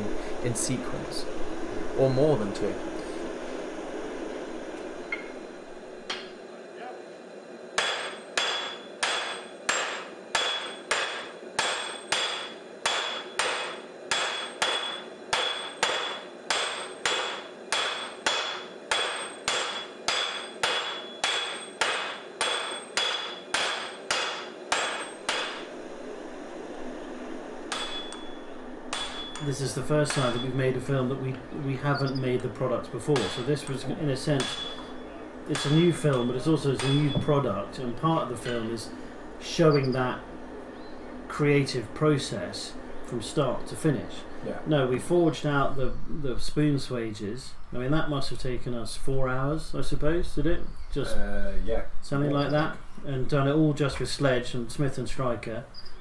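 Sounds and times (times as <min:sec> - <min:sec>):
forge burner running: 0:00.0 - 0:47.1
sledgehammers striking hot steel: 0:07.8 - 0:25.8, 0:27.7 - 0:37.6, 0:38.2 - 0:38.8.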